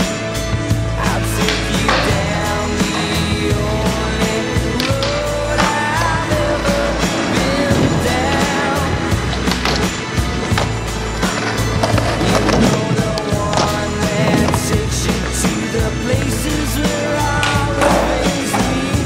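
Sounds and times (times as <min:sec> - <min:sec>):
music with a beat: 0:00.0 - 0:19.0
skateboard clacking down: 0:00.0 - 0:19.0
skateboard wheels rolling on concrete: 0:00.0 - 0:19.0.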